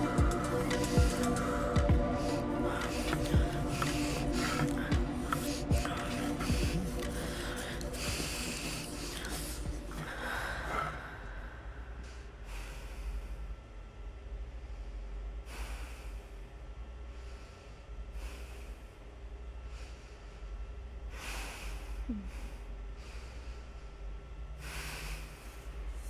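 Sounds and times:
person gasping heavily: 0:00.0 - 0:11.8
music with long held tones: 0:00.0 - 0:12.5.

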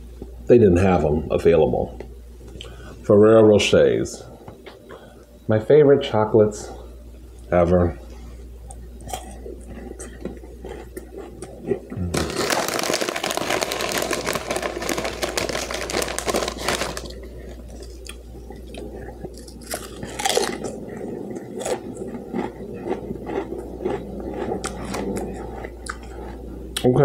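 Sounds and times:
close-up crunchy chewing: 0:08.6 - 0:26.9
wrapper crinkling: 0:12.1 - 0:18.2.

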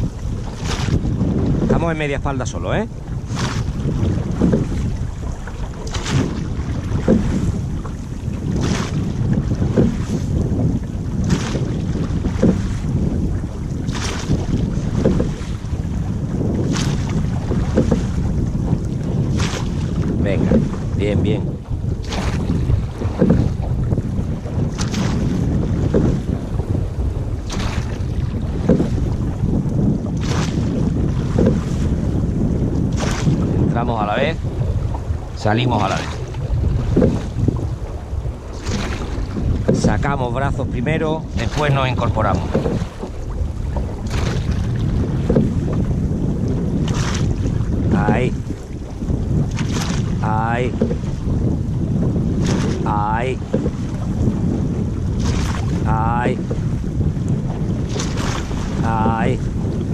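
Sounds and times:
oars knocking and splashing: 0:00.0 - 0:59.9
water rushing along hull: 0:00.0 - 0:59.9
wind buffeting microphone: 0:00.0 - 0:59.9.

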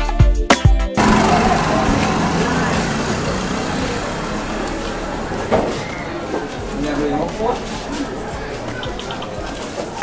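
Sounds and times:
faint voices: 0:01.0 - 0:10.0
road traffic: 0:01.0 - 0:10.0.

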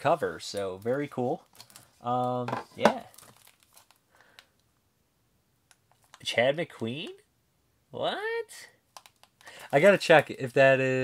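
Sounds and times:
plastic wrap crinkling: 0:00.4 - 0:02.0, 0:02.7 - 0:04.0.

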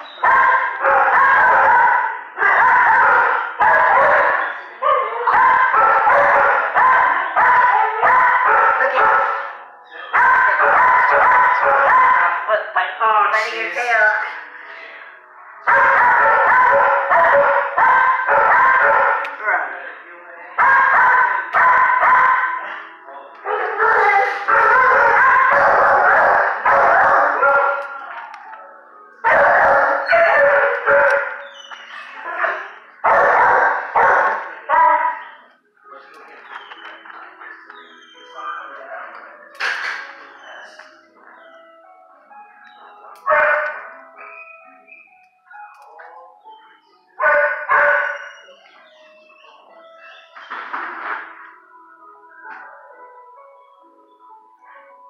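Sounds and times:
dogs barking: 0:00.0 - 0:12.7, 0:15.6 - 0:19.7, 0:20.6 - 0:28.6, 0:29.2 - 0:35.6, 0:42.6 - 0:51.6.

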